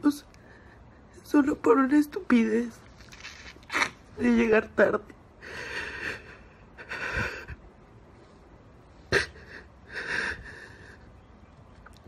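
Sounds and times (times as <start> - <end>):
woman sobbing breaths: 5.4 - 7.7, 9.1 - 11.0.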